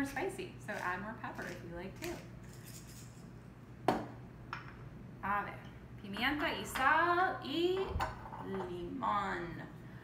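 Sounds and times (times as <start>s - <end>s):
pepper mill grinding: 0.1s - 3.2s.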